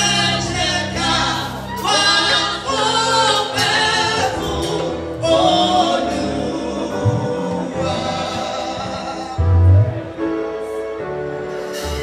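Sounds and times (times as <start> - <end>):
low bass notes: 0.0 - 10.5
band accompaniment: 0.0 - 12.0.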